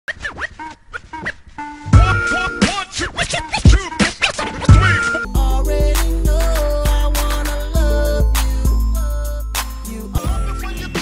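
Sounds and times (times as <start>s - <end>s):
turntable scratching: 0.1s - 5.3s.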